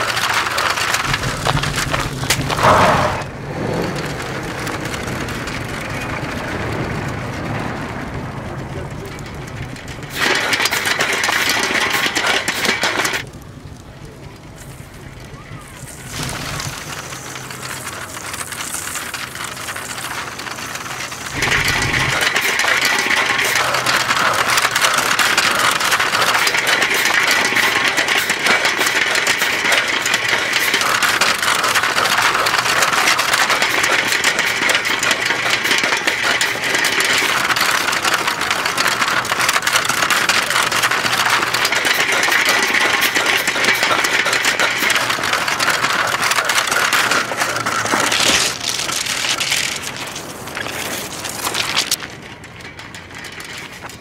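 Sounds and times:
bump: 0.0 - 10.2
film reel rattling over stony ground: 0.0 - 54.0.

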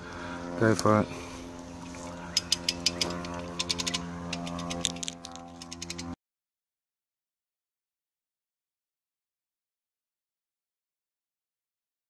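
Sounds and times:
ratchet pawl clicking: 2.3 - 6.2.

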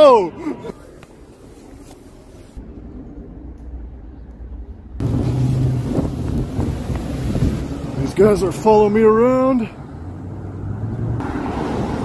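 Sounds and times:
street car traffic: 0.0 - 12.0
wind buffeting microphone: 2.6 - 8.6
vehicle engine hum driving by: 2.7 - 12.0.

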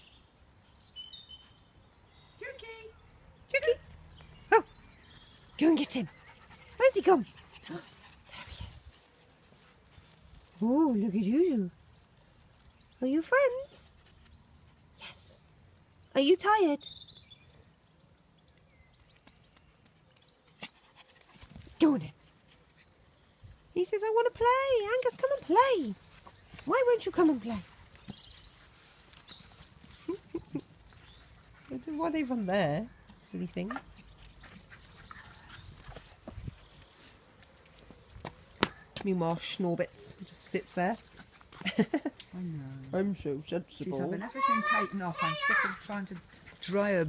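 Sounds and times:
footsteps on paving slabs: 26.2 - 30.2, 35.7 - 39.4.

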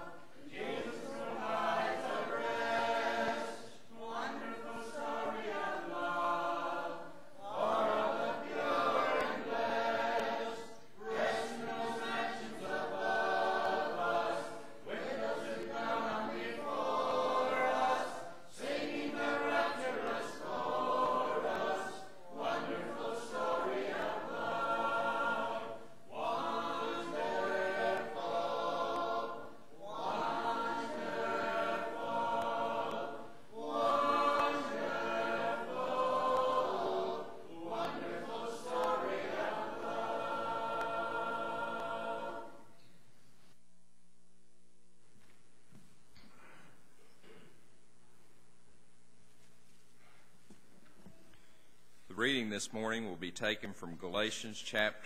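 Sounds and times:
congregation singing a hymn: 0.0 - 42.8.

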